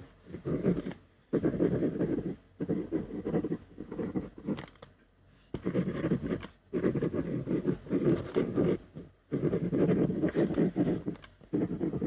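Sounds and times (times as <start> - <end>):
pen writing on paper: 0.0 - 4.7, 5.5 - 12.0.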